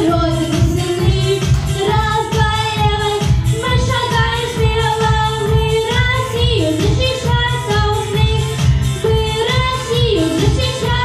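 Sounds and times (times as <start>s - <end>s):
boy singing into microphone: 0.0s - 8.4s, 9.1s - 11.0s
backing track with steady beat: 0.0s - 11.0s.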